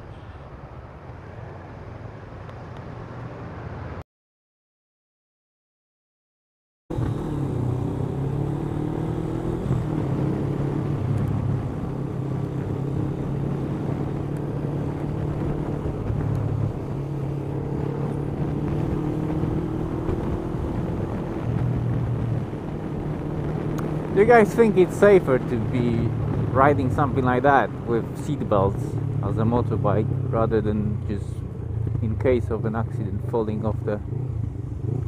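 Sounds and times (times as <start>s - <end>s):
road and wind noise: 0.0s - 4.0s, 6.9s - 35.0s.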